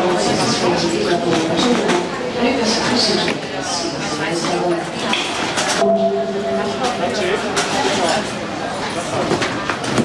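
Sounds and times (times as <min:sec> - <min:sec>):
chatter in echoing hall: 0:00.0 - 0:10.0
drawn-out pitched sound: 0:05.8 - 0:07.8.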